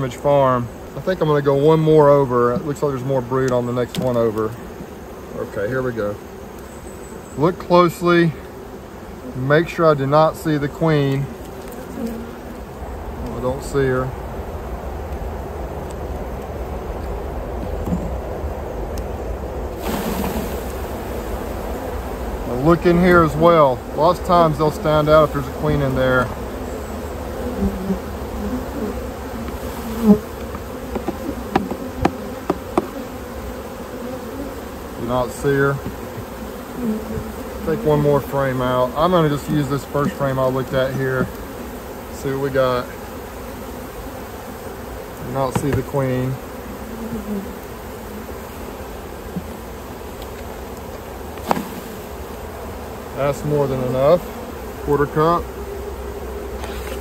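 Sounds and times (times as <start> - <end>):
honeybees buzzing: 0.0 - 57.0.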